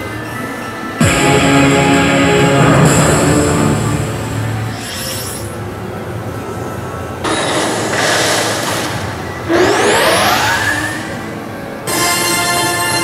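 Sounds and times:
arcade game music: 0:01.0 - 0:04.9, 0:09.5 - 0:13.0
loud rushing whoosh: 0:01.0 - 0:04.9
rising electronic sweep: 0:01.0 - 0:05.5, 0:09.5 - 0:11.4
electronic game sound effects: 0:07.3 - 0:11.3.

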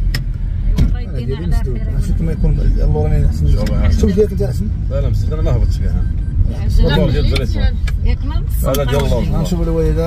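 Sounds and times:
road noise: 0:00.0 - 0:10.0
van engine rumble: 0:00.0 - 0:10.0
people talking: 0:00.8 - 0:10.0.

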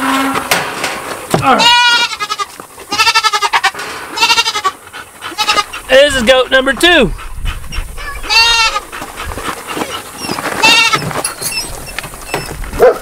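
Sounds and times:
goat bleating: 0:01.4 - 0:05.9, 0:08.0 - 0:08.9, 0:10.6 - 0:11.1.

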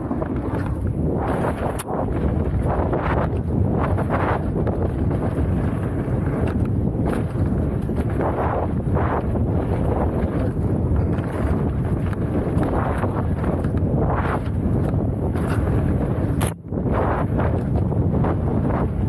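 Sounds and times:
tyres crunching on dirt: 0:00.0 - 0:18.8
bike rattling over bumps: 0:00.0 - 0:19.0
wind rushing over microphone: 0:00.0 - 0:19.0.

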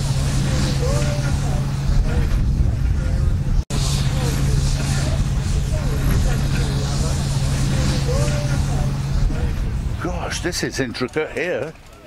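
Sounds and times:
distant crowd chatter: 0:00.0 - 0:12.0
machinery hum and rumble: 0:00.0 - 0:12.0.

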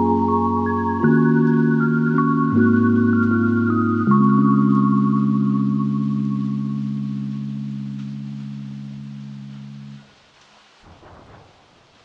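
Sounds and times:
held synthesizer chord: 0:00.0 - 0:10.0
faint hiss: 0:00.0 - 0:12.0.

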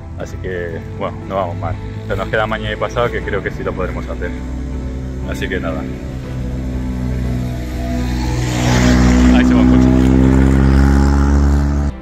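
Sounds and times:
vehicle engine: 0:00.0 - 0:12.0.

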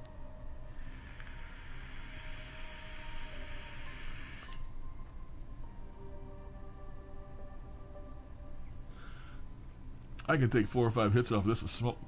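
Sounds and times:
vape hissing and sizzling: 0:00.8 - 0:04.5.

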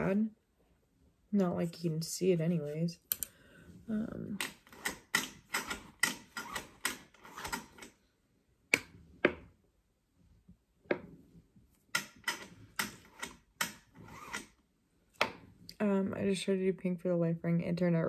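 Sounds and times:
light irregular clicks and taps: 0:03.0 - 0:03.4.

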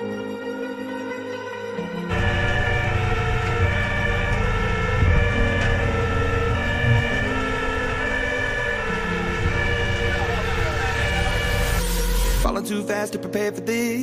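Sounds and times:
fire engine siren: 0:00.0 - 0:12.5
road noise: 0:02.1 - 0:12.5
truck engine rumble: 0:02.1 - 0:12.5.

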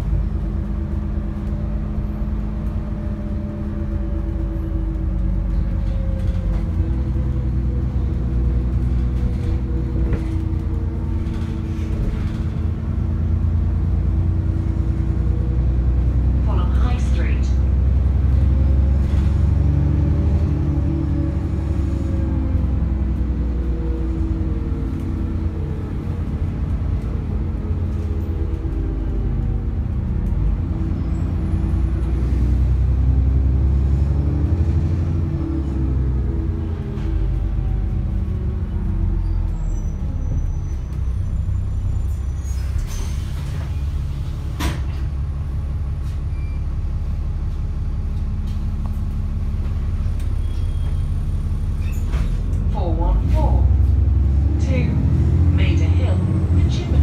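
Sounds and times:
bus diesel engine drone: 0:00.0 - 0:57.0.

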